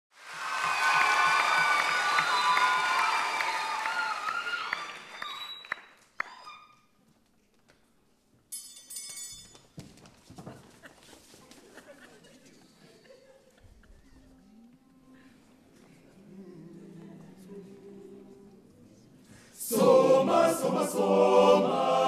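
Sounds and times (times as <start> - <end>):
audience cheering and applauding: 0.1 - 6.6
quiet stage sounds: 0.2 - 22.0.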